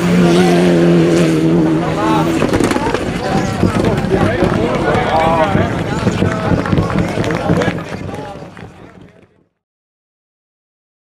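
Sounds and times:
race car engine: 0.0 - 9.4.

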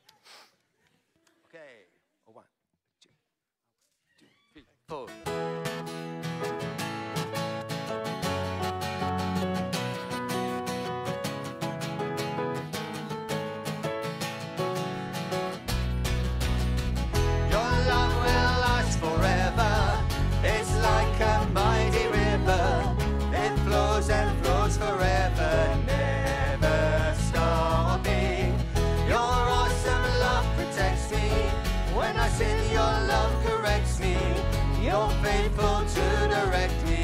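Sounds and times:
acoustic guitar strumming: 5.2 - 37.0
keyboard: 5.3 - 37.0
bass guitar: 15.6 - 37.0
voices singing: 17.4 - 37.0.

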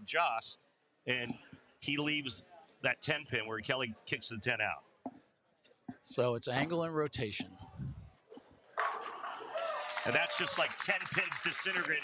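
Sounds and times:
spectators cheering and shouting: 9.3 - 10.7.

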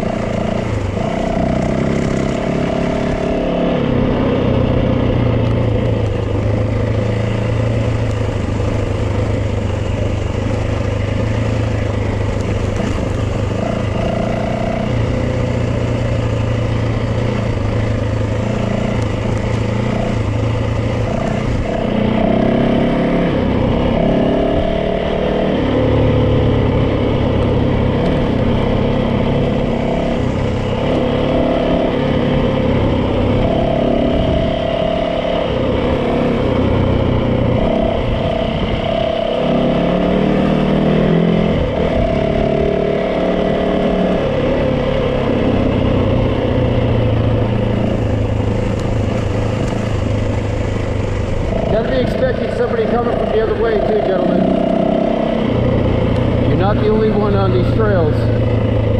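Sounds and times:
dirt bike engine revving: 0.0 - 58.9.

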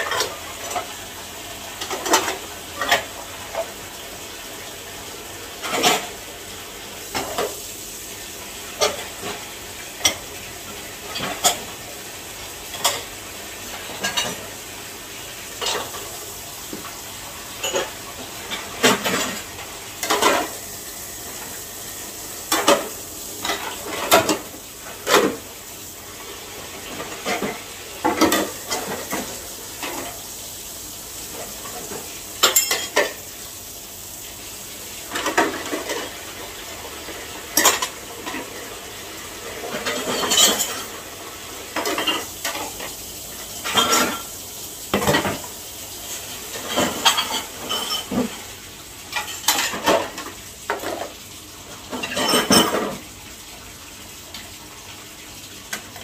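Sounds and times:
tap water running into tub: 0.0 - 56.0.

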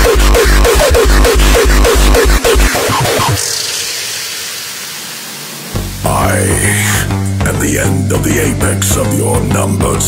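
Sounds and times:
deep bass and kick drum: 0.0 - 2.7, 5.8 - 10.0
white-noise sweep: 0.0 - 6.7
hardcore electronic dance music: 0.0 - 10.0.

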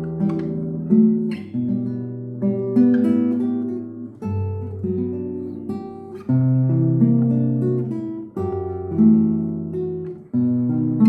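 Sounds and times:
fingerstyle classical guitar: 0.0 - 11.0.

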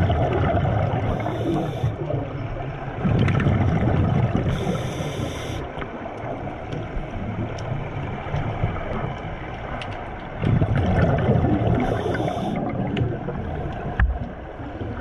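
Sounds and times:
exhaled bubbles gurgling: 0.0 - 15.0
faint clicks: 5.2 - 10.5.

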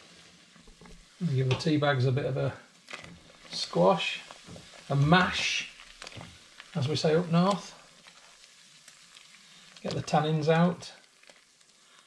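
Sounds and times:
tea simmering and bubbling: 0.0 - 12.0.

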